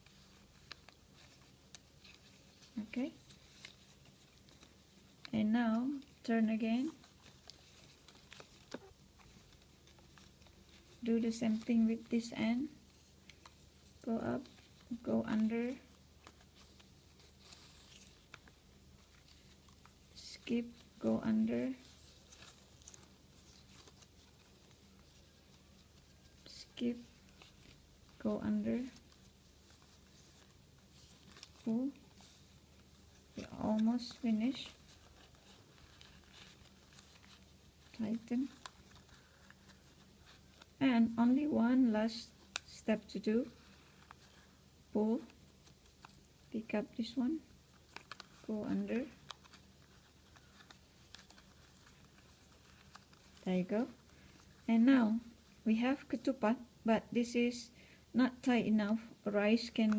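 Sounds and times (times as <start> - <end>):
faint leaf strips rustling: 0.0 - 59.9.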